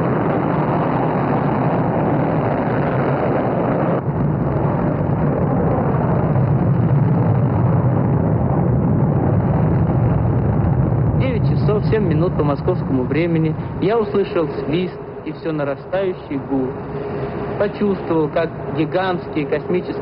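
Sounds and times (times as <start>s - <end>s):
rocket engines roaring: 0.0s - 20.0s.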